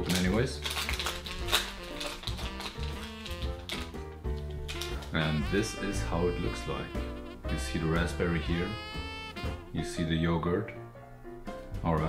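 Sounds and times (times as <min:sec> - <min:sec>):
plastic wrapper crinkling: 0:00.0 - 0:06.7
instrumental background music: 0:00.0 - 0:12.0.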